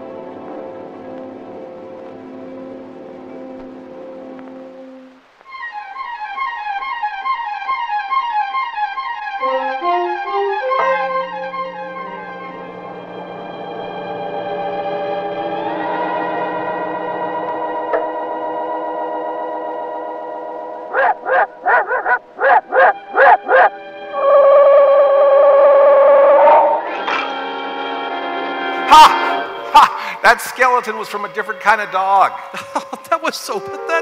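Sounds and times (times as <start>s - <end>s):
eerie sustained chords: 6.3s - 21.7s, 22.3s - 34.0s.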